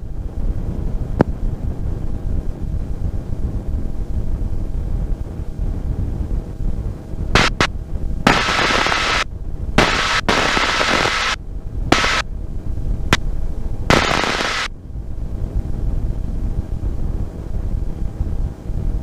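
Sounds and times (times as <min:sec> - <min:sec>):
bursts of loud hiss: 0:07.4 - 0:07.7, 0:08.3 - 0:12.2, 0:13.9 - 0:14.7.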